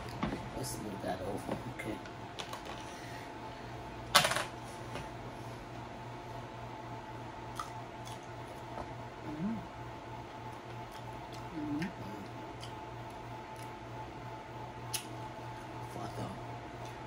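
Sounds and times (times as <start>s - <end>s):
steady background hum: 0.0s - 17.0s
closed-mouth hums: 7.4s - 13.8s.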